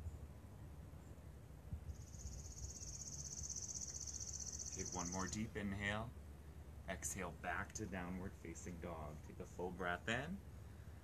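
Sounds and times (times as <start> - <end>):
faint low outdoor rumble: 0.0 - 11.0.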